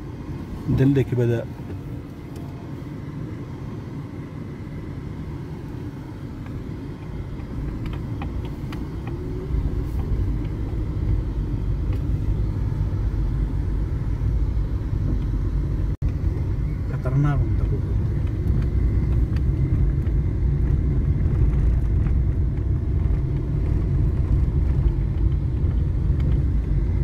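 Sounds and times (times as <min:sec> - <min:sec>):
car road noise on dirt road: 0:00.0 - 0:27.0.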